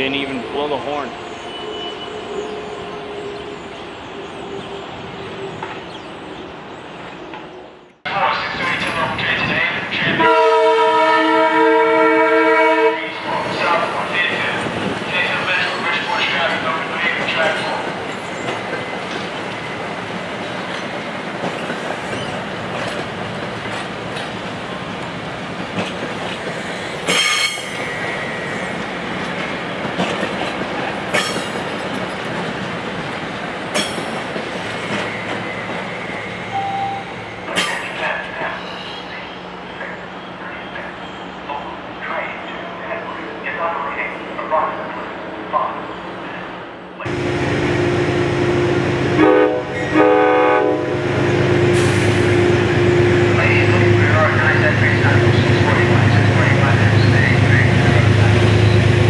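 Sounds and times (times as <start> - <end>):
train wheels rumbling: 8.2 - 41.4, 47.0 - 59.0
train horn blast: 10.1 - 13.2, 48.2 - 54.0.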